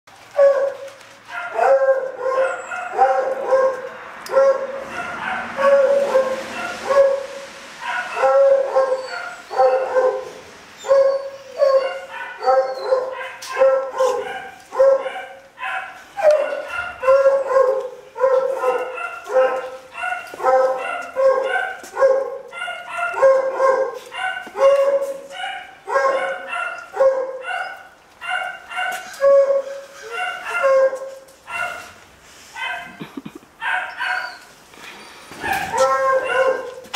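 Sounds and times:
dog barking: 0.4 - 32.0, 32.6 - 33.0, 33.6 - 34.4, 35.4 - 36.9.

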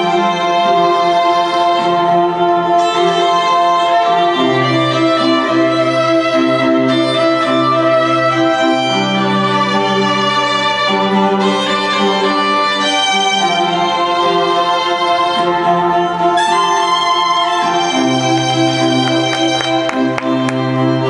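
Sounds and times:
string music over loudspeakers: 0.0 - 21.0.

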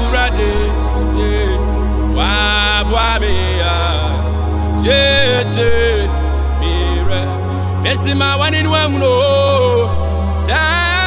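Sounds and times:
man singing gospel song: 0.0 - 11.0
sustained backing chords: 0.0 - 11.0.

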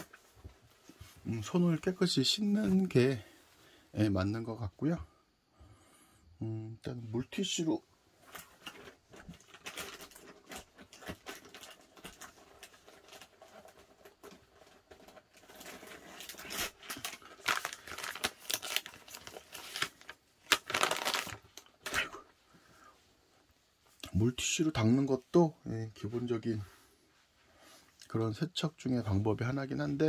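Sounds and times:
wet wipe crinkling and rustling: 8.1 - 22.0.

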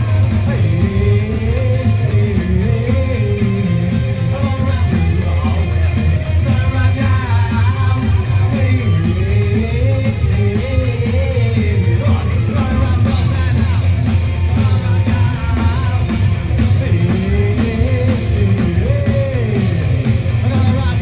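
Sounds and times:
band playing live: 0.0 - 21.0
electric guitar: 0.0 - 21.0
heavy bass and drums: 0.0 - 21.0
person singing: 0.0 - 21.0.

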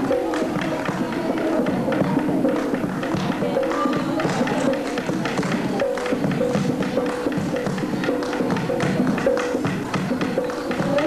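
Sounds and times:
women singing folk song: 0.0 - 6.2
hand drum beating: 0.0 - 11.0.

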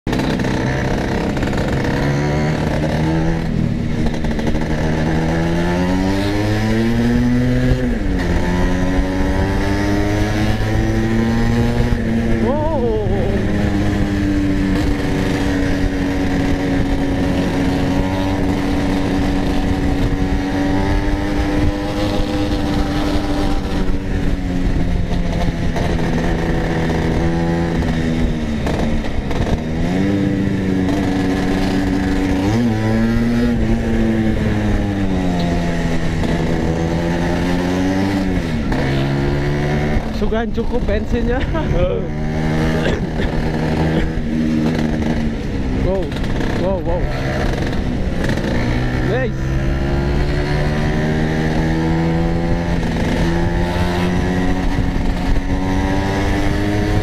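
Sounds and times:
scooter engine accelerating: 0.1 - 57.0.

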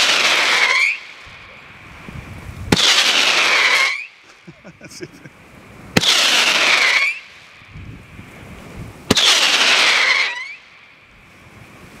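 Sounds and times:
firework whistling shots: 0.0 - 4.4, 5.9 - 7.8, 9.0 - 11.0.

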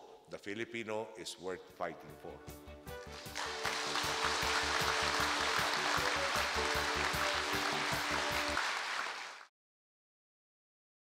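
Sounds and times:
background music with steady beat: 1.6 - 8.9
audience applauding: 3.0 - 9.5.

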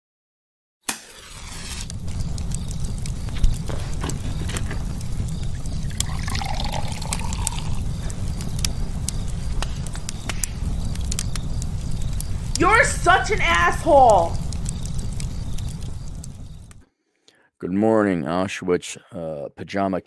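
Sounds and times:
fire crackling: 0.9 - 16.9
low rumble: 1.8 - 13.3, 14.1 - 16.8
liquid pouring into glass: 5.8 - 7.8.

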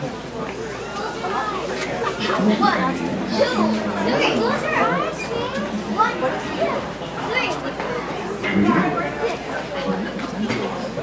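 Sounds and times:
crowd of young people talking: 0.0 - 11.0.

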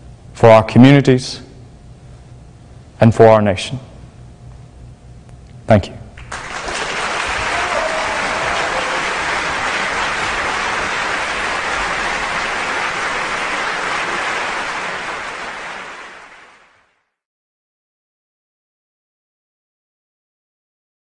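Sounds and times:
audience applauding: 6.2 - 16.9.

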